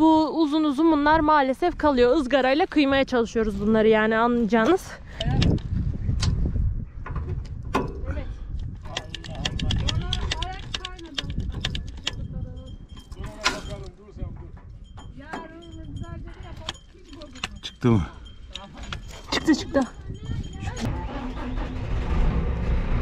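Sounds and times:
sharp metallic clinks and knocks: 8.8s - 20.9s
low rumble: 19.9s - 23.0s.

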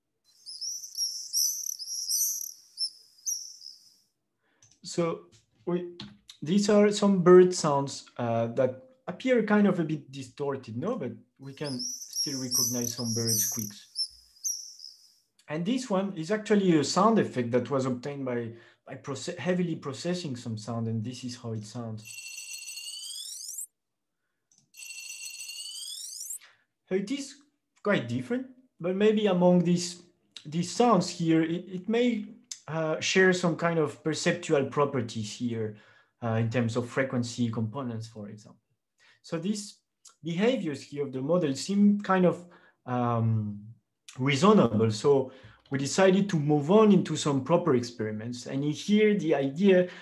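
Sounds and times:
swallows screeching: 0.3s - 4.0s, 11.4s - 15.1s, 23.0s - 23.7s, 25.6s - 26.4s
processed coin ringing tone: 22.0s - 23.5s, 24.8s - 26.2s.

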